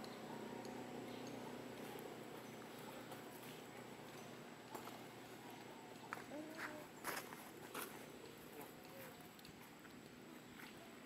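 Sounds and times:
rustling scuffs on dry ground: 6.0s - 9.8s.

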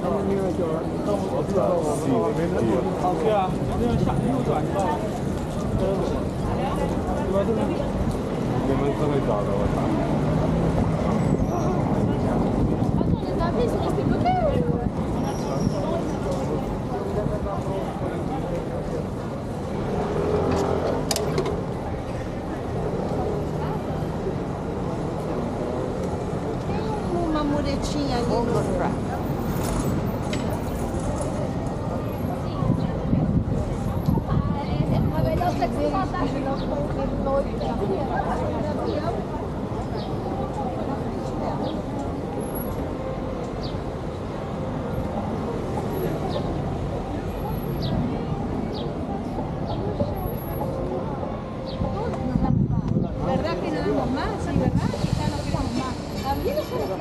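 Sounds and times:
indistinct voices of passers-by: 0.0s - 57.0s
low traffic rumble: 0.0s - 57.0s.

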